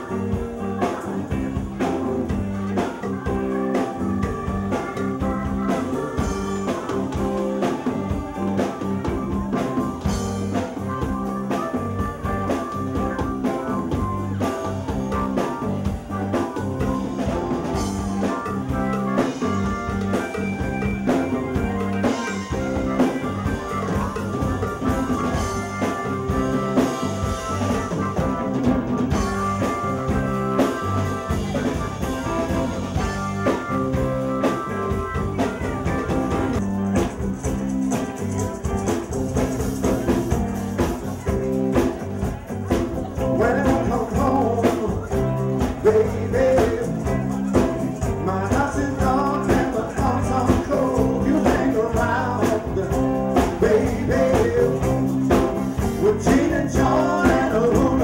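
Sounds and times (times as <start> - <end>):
drum kit: 0.0 - 58.0
electric guitar: 0.0 - 58.0.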